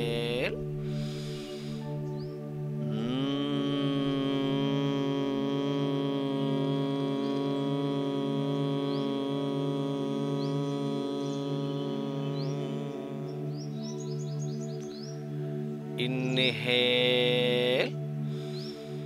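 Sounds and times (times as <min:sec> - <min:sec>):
man humming: 0:00.0 - 0:00.7, 0:02.8 - 0:13.8, 0:16.0 - 0:18.0.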